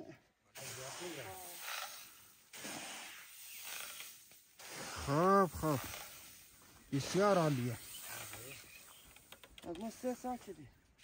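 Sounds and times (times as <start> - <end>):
broom sweeping on a tarp: 0.6 - 8.9
shovel scooping grain: 0.6 - 9.0
drawn-out calls: 3.5 - 10.0.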